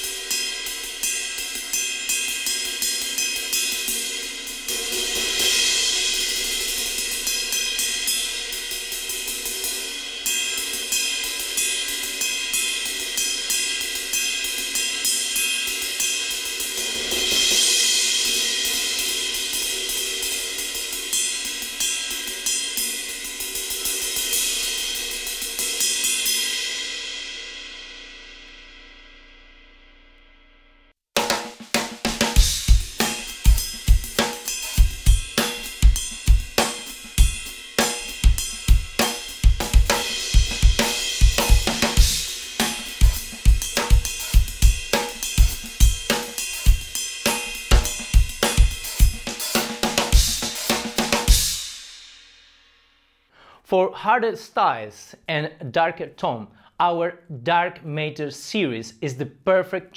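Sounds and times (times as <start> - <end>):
drum kit groove: 0.0 - 27.5, 31.2 - 52.5
ride cymbal played with stick: 0.0 - 29.4, 31.2 - 53.0.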